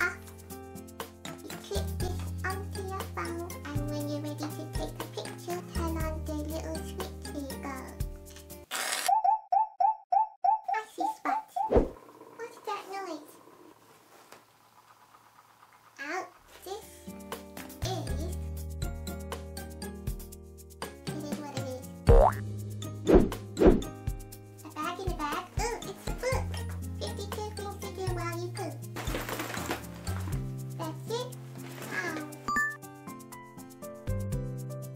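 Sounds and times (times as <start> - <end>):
background music: 0.0 - 8.7, 16.7 - 34.9
boop sound effects: 22.1 - 22.4
cartoon boing rising in pitch: 22.1 - 22.4.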